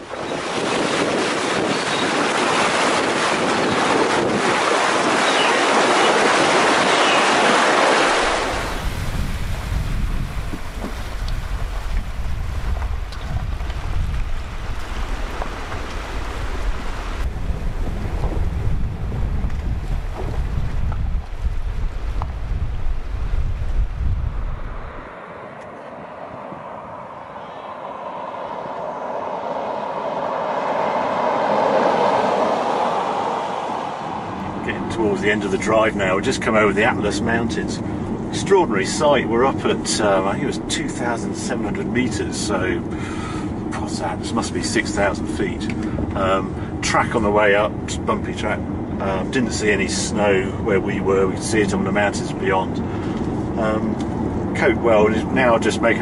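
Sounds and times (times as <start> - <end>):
water splashing against wheel: 0.3 - 22.4
car rumbling over rocks: 8.2 - 22.4
tyre noise on tarmac: 8.2 - 22.5.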